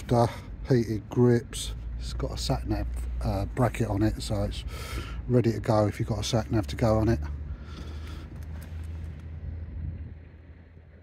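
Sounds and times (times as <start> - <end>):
wind rumble on microphone: 8.3 - 11.0.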